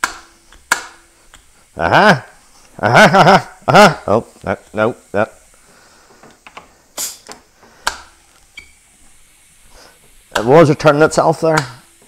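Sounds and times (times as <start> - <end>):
short hiss: 4.3 - 12.0.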